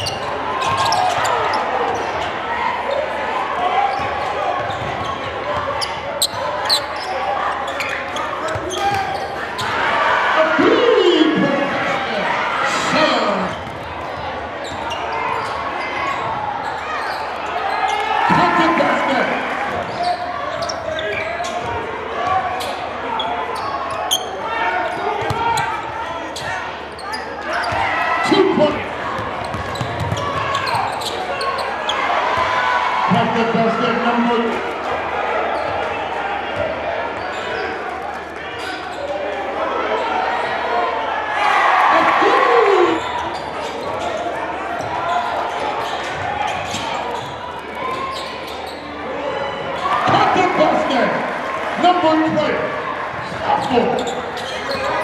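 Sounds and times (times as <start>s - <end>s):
loud shouts: 0.0s - 13.6s, 14.8s - 55.0s
crowd chatter: 0.0s - 55.0s
basketball bouncing on court: 3.9s - 7.0s, 8.5s - 9.8s, 25.2s - 25.8s, 29.1s - 31.1s.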